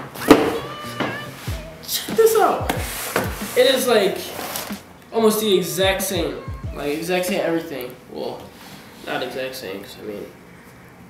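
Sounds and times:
background music: 0:00.0 - 0:07.9.

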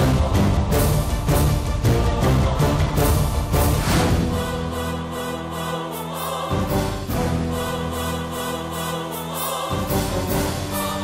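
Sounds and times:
choir-like music chords: 0:00.0 - 0:11.0.

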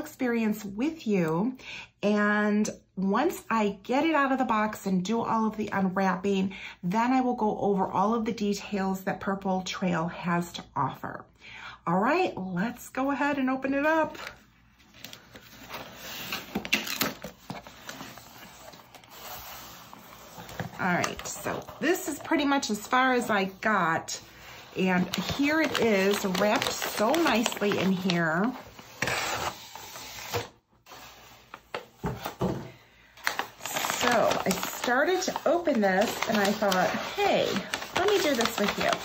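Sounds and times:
paper rustling: 0:14.2 - 0:22.9, 0:24.4 - 0:32.5, 0:33.2 - 0:39.0
cardboard scraping and rustling: 0:25.1 - 0:32.6.

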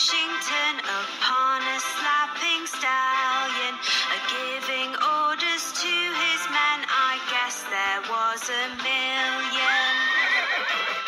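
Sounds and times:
instrumental backing music: 0:00.0 - 0:11.0
horse whinny: 0:09.7 - 0:11.0.

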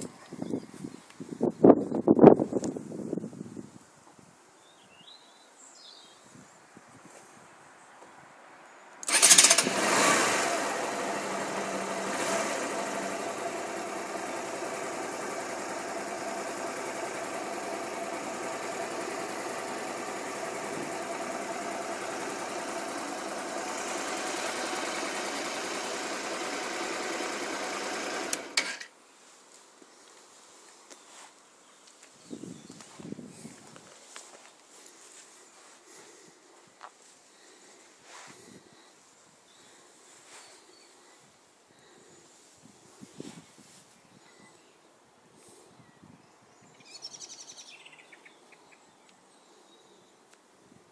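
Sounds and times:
motorcycle engine starting and idling: 0:09.0 - 0:28.9.

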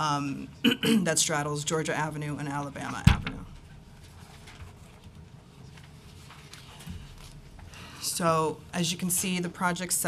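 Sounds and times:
papers rustling: 0:04.0 - 0:07.8.

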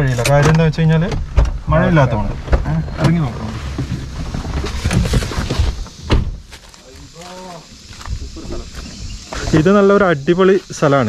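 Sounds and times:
car door unlatched and opened: 0:00.1 - 0:01.6.

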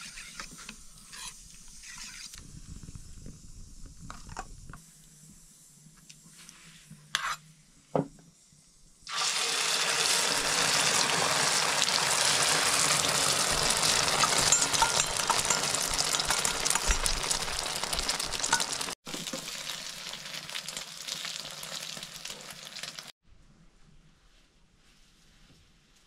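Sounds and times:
egg sizzling in hot oil: 0:09.0 - 0:23.2.

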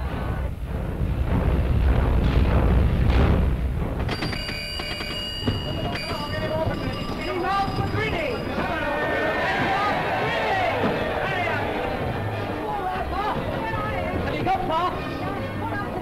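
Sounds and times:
loud low rumble: 0:00.0 - 0:04.1
telegraph bell ringing: 0:04.1 - 0:09.7.

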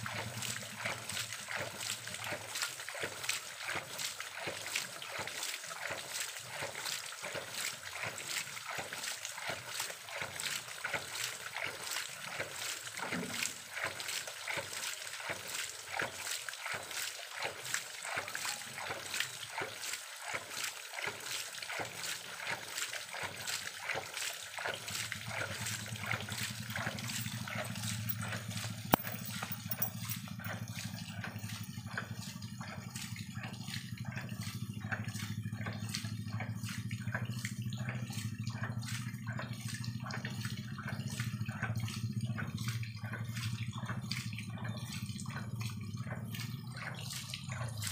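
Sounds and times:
pump valve beating rhythmically: 0:00.0 - 0:47.9
water splashing: 0:00.0 - 0:47.9.

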